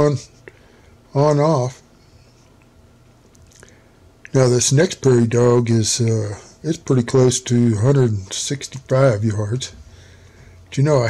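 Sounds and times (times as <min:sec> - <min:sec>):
faint steady hum: 0:00.0 - 0:11.0
low hiss: 0:00.0 - 0:11.0.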